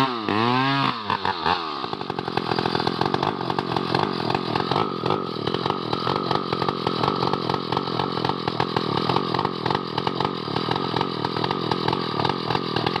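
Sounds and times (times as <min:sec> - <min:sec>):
chainsaw cutting wood: 0:00.0 - 0:13.0.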